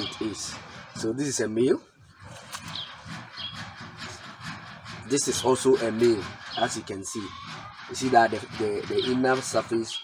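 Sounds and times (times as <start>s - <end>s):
faint outdoor background: 0.0s - 10.0s
bird chirps: 2.6s - 3.8s, 5.2s - 8.1s, 8.8s - 10.0s.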